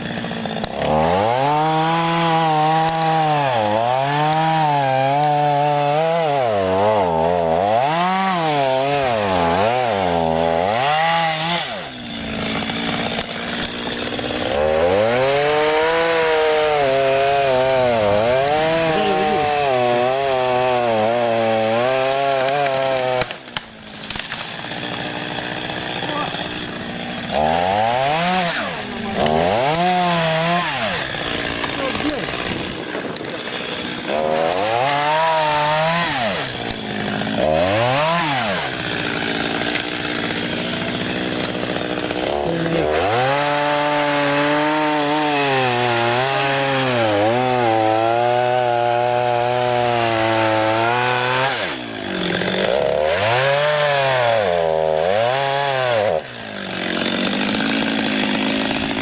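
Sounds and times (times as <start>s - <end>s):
chainsaw cutting wood: 0.0s - 59.0s.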